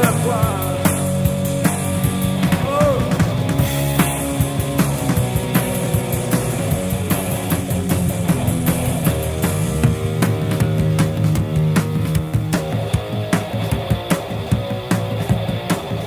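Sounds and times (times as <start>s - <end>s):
rock band playing instrumental: 0.0s - 16.0s.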